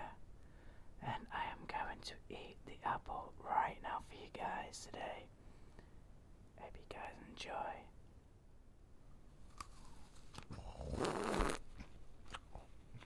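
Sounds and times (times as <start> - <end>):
person whispering: 0.0 - 0.2, 1.0 - 5.3, 6.6 - 8.0
biting into apple: 9.5 - 13.0.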